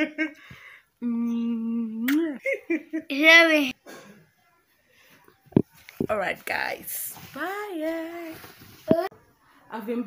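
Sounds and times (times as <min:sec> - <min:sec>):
woman humming: 0:01.0 - 0:02.4.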